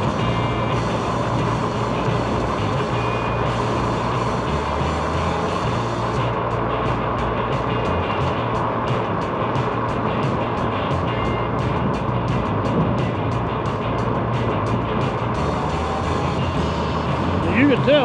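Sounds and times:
music: 0.0 - 18.0
vehicle driving on road: 0.0 - 18.0.

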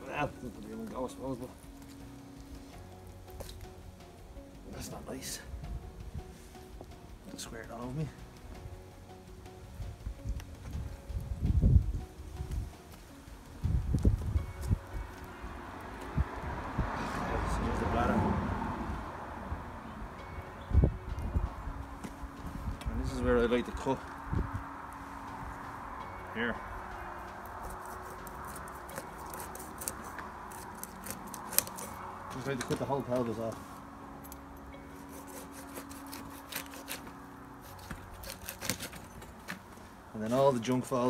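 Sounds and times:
steady low background noise: 0.0 - 16.8, 18.7 - 31.4, 32.0 - 38.6
soft background music: 0.0 - 41.0.

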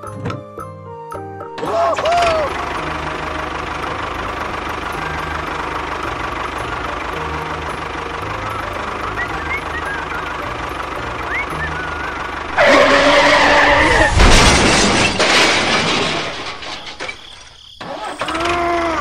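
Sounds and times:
tractor engine running: 0.0 - 19.0
sudden loud sound: 12.6 - 16.4.

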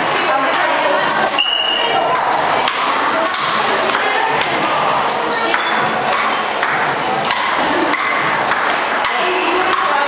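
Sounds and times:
voices in a large room: 0.0 - 10.0
table tennis ball clicks: 5.5 - 10.0.

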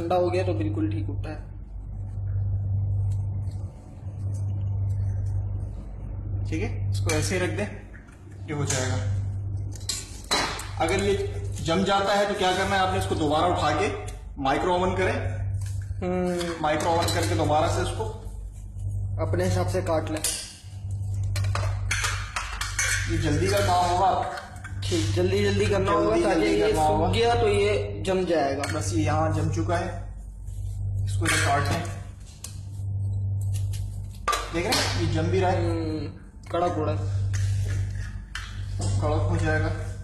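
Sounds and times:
steady low hum: 0.0 - 40.0.

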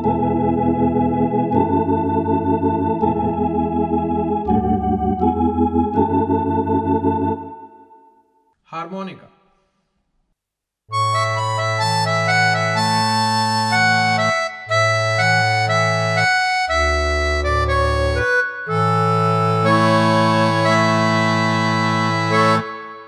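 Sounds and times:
digital piano with organ-like voice: 0.0 - 8.2, 10.9 - 23.0.

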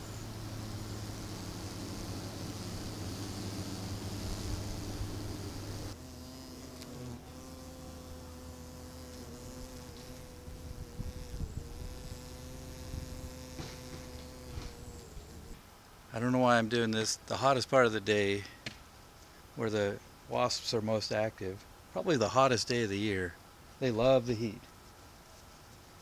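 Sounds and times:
wasps buzzing: 0.0 - 15.6.

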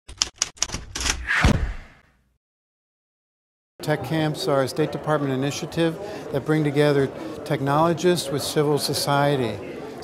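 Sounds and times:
whoosh: 1.2 - 2.0.

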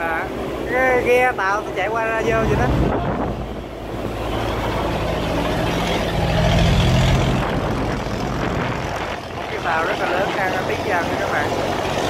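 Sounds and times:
boat engine running: 0.0 - 12.0
churned water rushing: 0.0 - 12.0.

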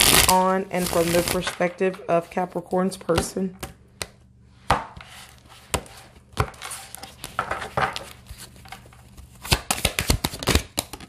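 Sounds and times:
card rustling: 5.0 - 11.0.

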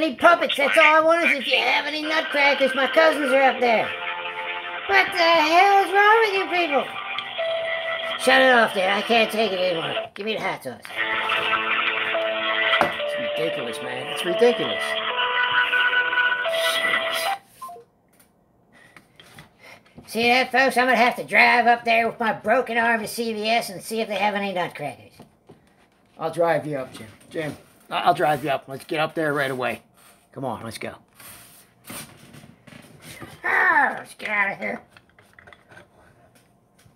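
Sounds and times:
hold music over phone speaker: 0.7 - 10.1, 10.9 - 17.8.

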